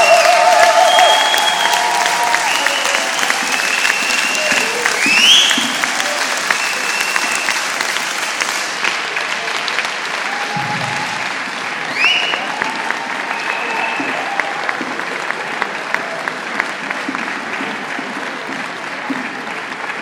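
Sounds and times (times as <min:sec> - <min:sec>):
audience applauding: 0:00.0 - 0:20.0.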